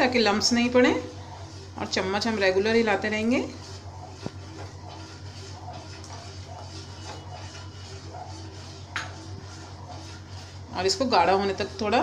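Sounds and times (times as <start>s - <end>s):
metal spoon stirring milk in pan: 0.0s - 12.0s
steady low hum: 0.0s - 12.0s.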